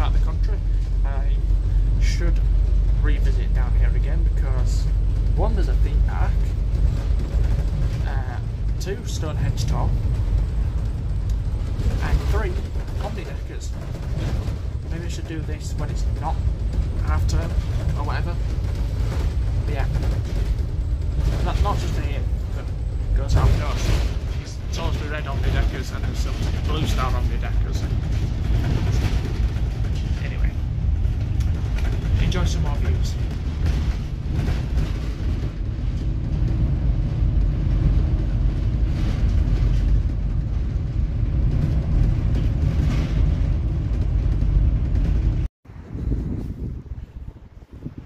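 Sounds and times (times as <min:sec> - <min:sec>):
bus engine and road rumble: 0:00.0 - 0:48.0
wind on microphone: 0:27.8 - 0:48.0.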